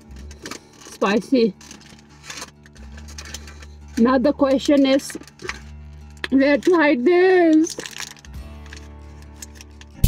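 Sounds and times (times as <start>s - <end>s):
foil wrapper crinkling: 0.0s - 4.0s, 4.6s - 10.0s.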